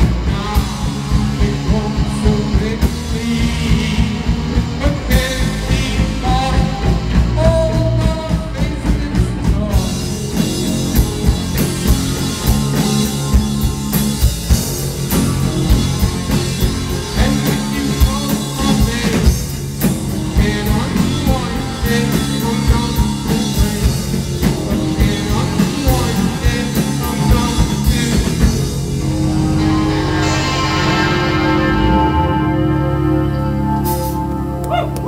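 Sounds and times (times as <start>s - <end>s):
man singing into microphone: 0.0s - 11.1s, 17.1s - 19.6s, 20.2s - 28.7s
bass guitar: 0.0s - 35.0s
drum kit: 0.0s - 35.0s
electric guitar: 0.0s - 35.0s.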